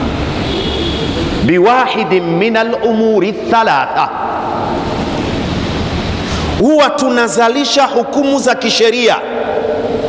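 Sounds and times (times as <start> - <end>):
man speaking: 1.4 - 4.8, 6.6 - 9.6.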